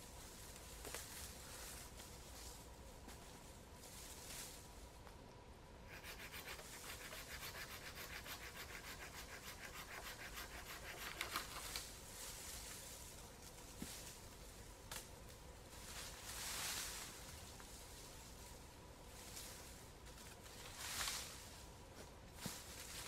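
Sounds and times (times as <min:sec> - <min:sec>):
hand saw cutting wood: 0:05.9 - 0:11.6.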